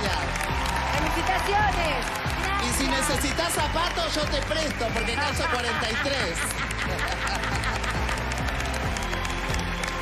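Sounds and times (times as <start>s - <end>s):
audience clapping: 0.0s - 10.0s
background music: 0.0s - 10.0s.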